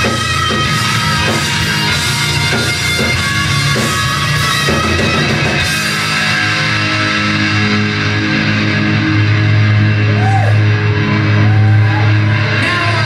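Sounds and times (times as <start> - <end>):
hard rock band playing: 0.0 - 13.0.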